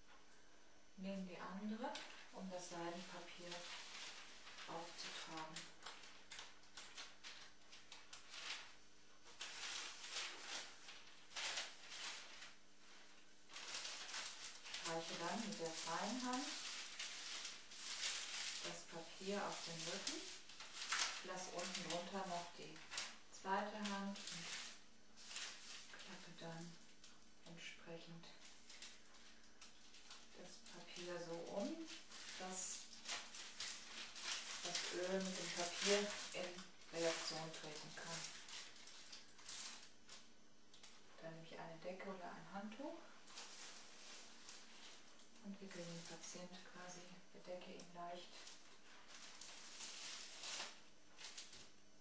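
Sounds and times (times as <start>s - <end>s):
soft voice speaking: 1.0s - 3.8s, 4.7s - 5.7s, 14.8s - 16.6s, 18.6s - 20.4s, 21.2s - 24.6s, 26.0s - 26.8s, 27.4s - 28.5s, 30.3s - 32.9s, 34.6s - 38.3s, 41.2s - 43.1s, 45.4s - 48.5s
tissue paper rustling: 1.5s - 27.2s, 28.2s - 41.2s, 42.1s - 51.8s.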